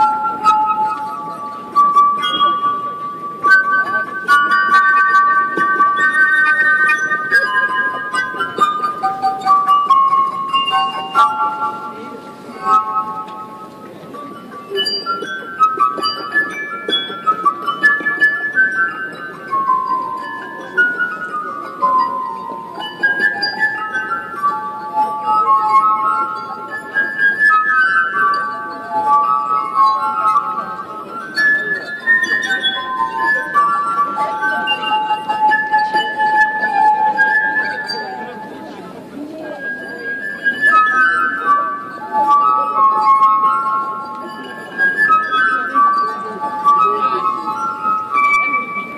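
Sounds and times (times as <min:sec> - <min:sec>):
glass harp melody: 0:00.0 - 0:48.9.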